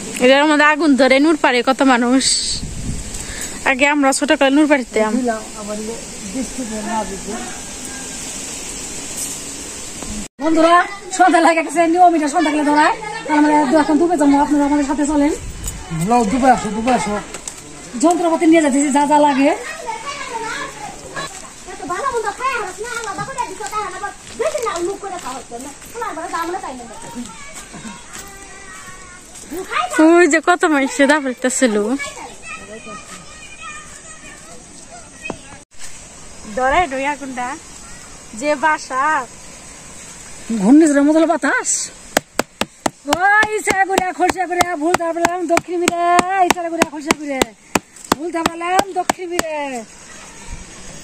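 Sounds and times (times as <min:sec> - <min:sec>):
stick beating bamboo tray: 0:42.2 - 0:49.5.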